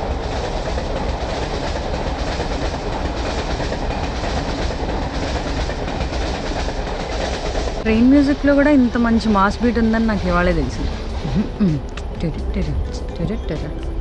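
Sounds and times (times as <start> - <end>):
train wheels on rails: 0.0 - 14.0.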